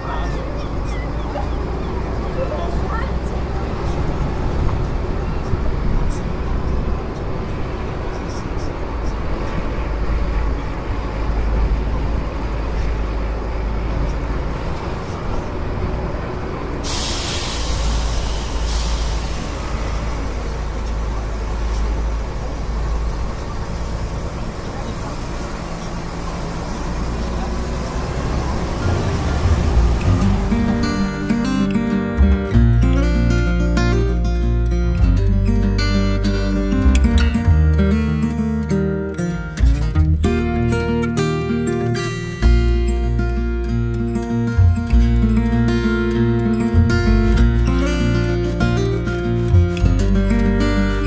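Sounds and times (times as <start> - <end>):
bus engine and wind rumble: 0.0 - 51.0
hiss: 16.8 - 20.6.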